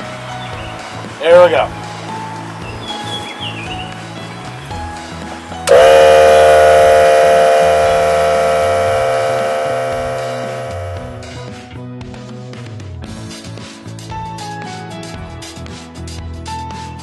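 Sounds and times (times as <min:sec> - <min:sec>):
background music: 0:00.0 - 0:17.0
air compressor droning: 0:05.7 - 0:11.3.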